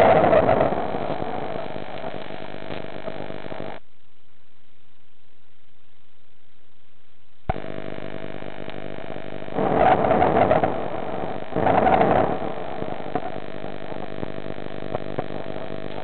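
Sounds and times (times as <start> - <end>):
steady electrical hum: 0.0 - 16.0.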